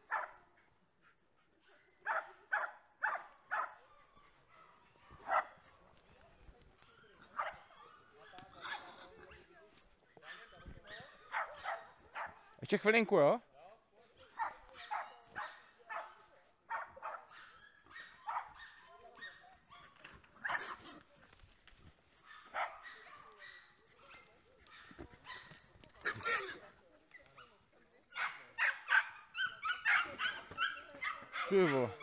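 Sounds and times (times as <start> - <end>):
small dog barking: 0.0 - 0.4, 2.0 - 5.6, 7.3 - 8.9, 10.2 - 12.6, 14.3 - 21.0, 22.2 - 26.5, 27.4 - 32.0.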